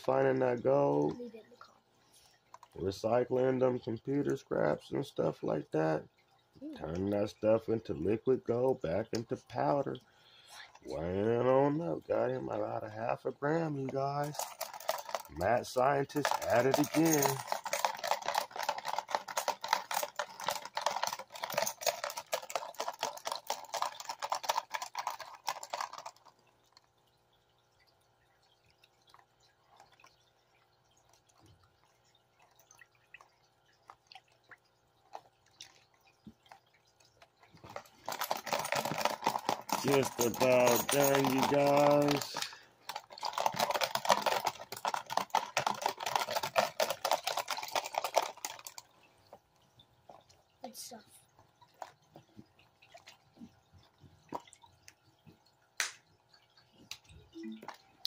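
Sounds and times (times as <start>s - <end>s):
water sloshing in a pan: 11.7s - 58.0s.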